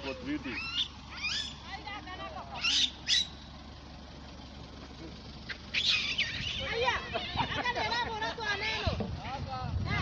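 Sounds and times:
man laughing: 7.1s - 8.4s.

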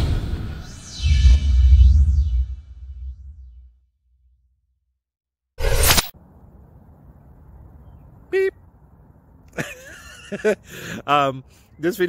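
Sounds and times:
loud whoosh: 0.0s - 3.8s.

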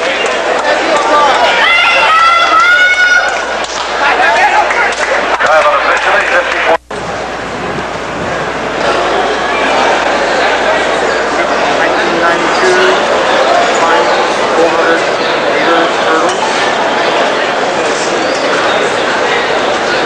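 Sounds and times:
stadium crowd cheering: 0.0s - 20.0s.

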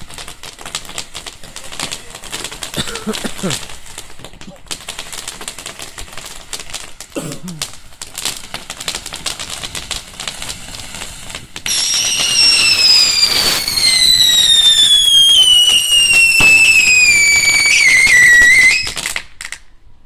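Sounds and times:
firework fountain crackling: 0.0s - 19.9s
firework whistle: 4.8s - 19.7s.

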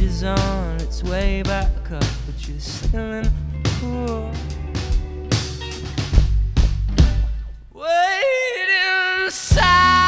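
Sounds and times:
drum hits: 0.0s - 7.6s
live rock band playing: 0.0s - 7.6s.

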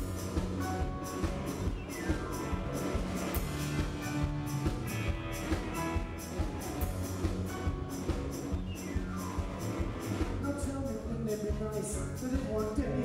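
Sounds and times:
live band instrumental: 0.0s - 13.0s.

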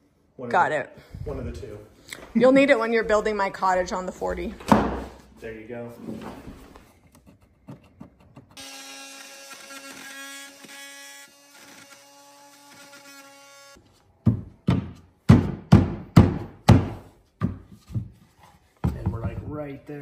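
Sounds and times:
oscillating multi-tool buzzing: 8.6s - 13.8s
loud sharp knocks: 14.3s - 17.6s.

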